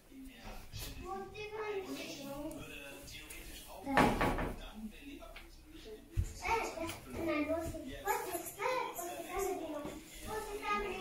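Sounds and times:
door shutting with a thud: 3.9s - 4.6s.

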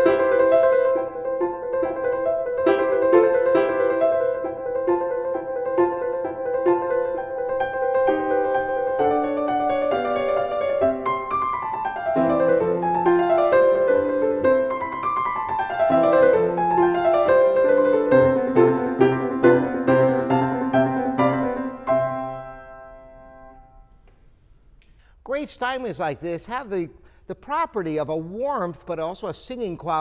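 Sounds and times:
classical piano piece: 0.0s - 24.0s.

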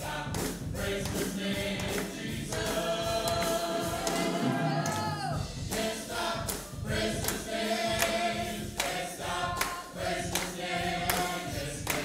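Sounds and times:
choir singing gospel: 0.0s - 12.0s.

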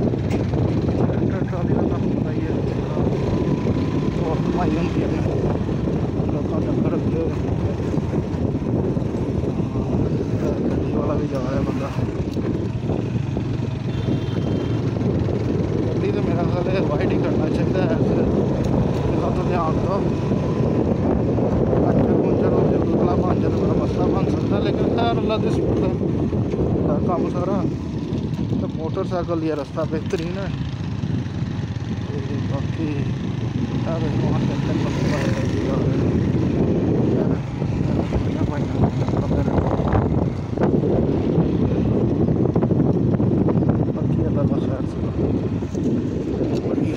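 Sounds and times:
motorcycle engine running: 0.0s - 46.9s
road noise: 0.0s - 46.9s
wind buffeting microphone: 0.0s - 46.9s.

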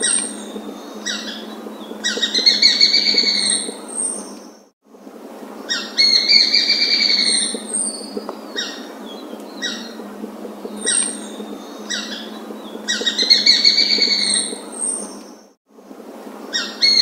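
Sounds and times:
hawk calling: 9.6s - 14.6s.

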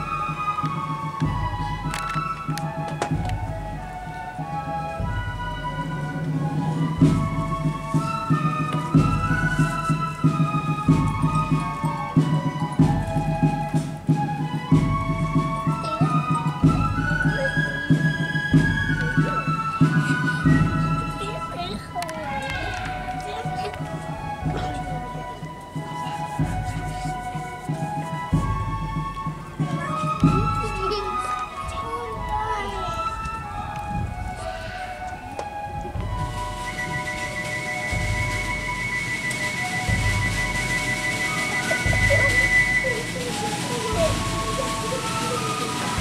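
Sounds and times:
flute band music: 0.0s - 46.0s
voices talking: 0.0s - 46.0s
bass drum beating: 0.8s - 27.3s
bass drum beats: 28.2s - 37.0s.

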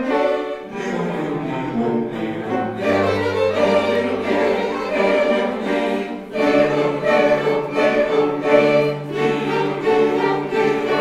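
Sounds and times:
bowed strings: 0.0s - 11.0s
mixed choir singing: 0.0s - 11.0s.

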